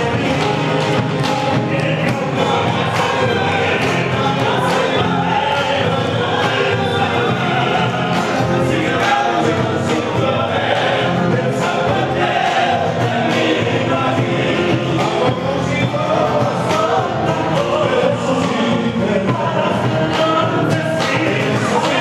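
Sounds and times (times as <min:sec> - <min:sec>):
folk group singing in chorus: 0:00.0 - 0:22.0.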